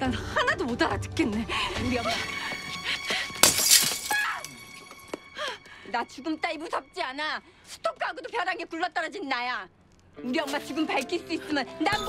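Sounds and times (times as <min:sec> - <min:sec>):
tense background music: 0:00.0 - 0:03.4
glass shattering: 0:03.4 - 0:04.5.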